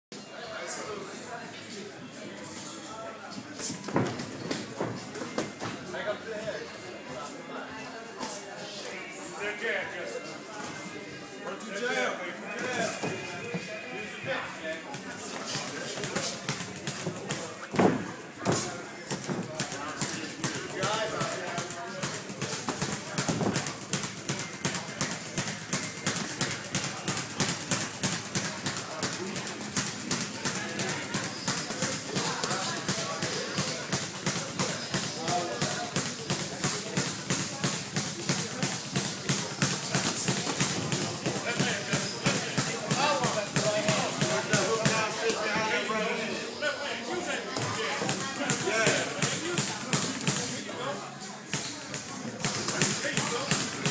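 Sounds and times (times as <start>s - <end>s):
voices: 0.6s - 53.9s.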